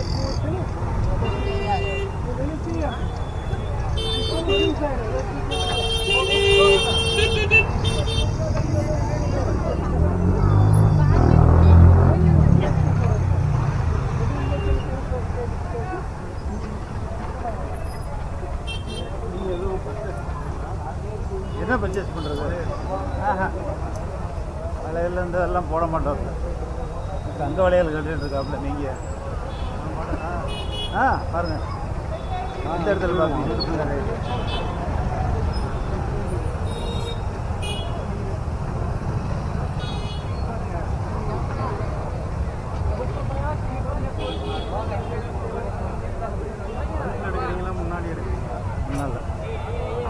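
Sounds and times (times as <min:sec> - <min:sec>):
vehicle engines rumbling: 0:00.0 - 0:50.0
voices of passers-by: 0:00.0 - 0:50.0.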